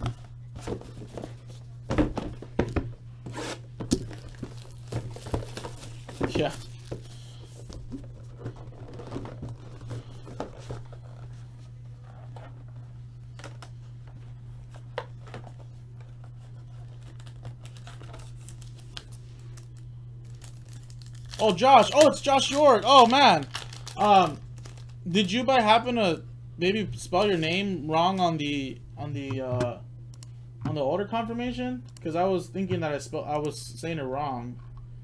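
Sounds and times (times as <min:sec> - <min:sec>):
plastic wrap crinkling and tearing: 0:03.4 - 0:07.8, 0:16.5 - 0:25.0.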